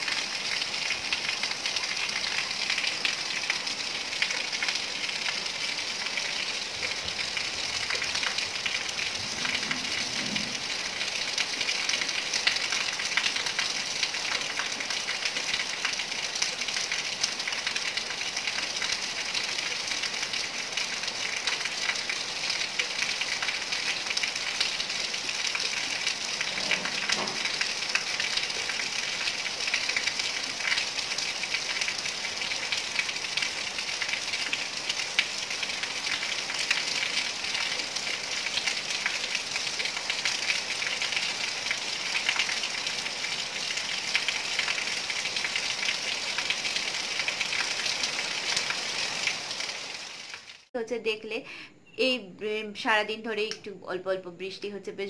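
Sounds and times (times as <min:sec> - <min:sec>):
rain on concrete rooftop: 0:00.0 - 0:50.8.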